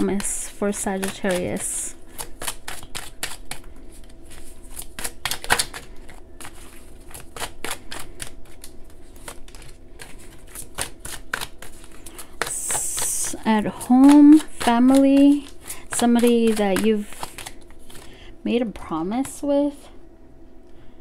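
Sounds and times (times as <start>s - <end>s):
cards being shuffled: 1.0s - 18.1s.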